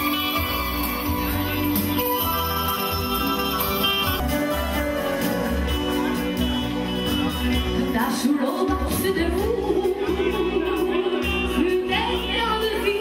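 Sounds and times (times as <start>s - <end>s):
guitar: 0.0s - 13.0s
live band playing: 0.0s - 13.0s.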